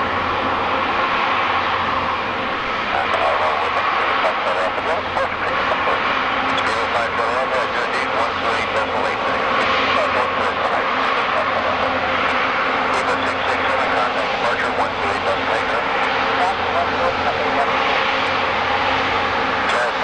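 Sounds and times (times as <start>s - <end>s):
jet engines at taxi power: 0.0s - 20.0s.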